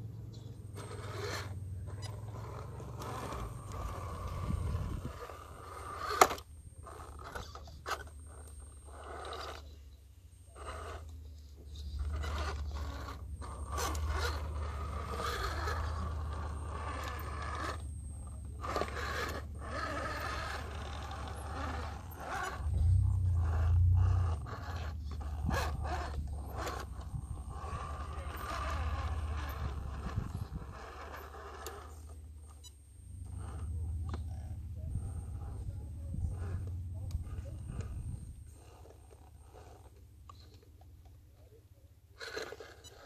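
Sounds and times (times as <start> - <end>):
rc car motor whining: 0.0 - 43.0
tyres scraping on rock: 0.4 - 9.8, 10.5 - 32.6, 33.3 - 40.7, 42.2 - 43.0
low rumble: 12.0 - 31.9, 33.1 - 38.8.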